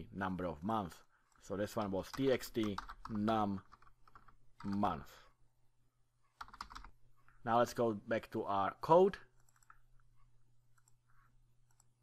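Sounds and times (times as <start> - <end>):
computer mouse clicks: 9.4 - 12.0.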